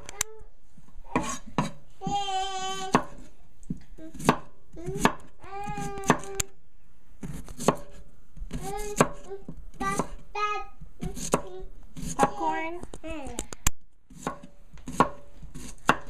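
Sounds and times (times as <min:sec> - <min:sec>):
knife cutting on wooden board: 0:01.2 - 0:01.8, 0:07.2 - 0:09.2, 0:11.0 - 0:12.3, 0:14.1 - 0:16.0.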